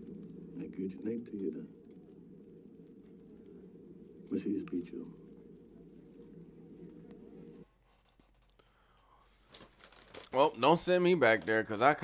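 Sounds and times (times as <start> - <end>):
steady murmur: 0.0 - 10.2
muffled tv drama soundtrack: 0.0 - 12.0.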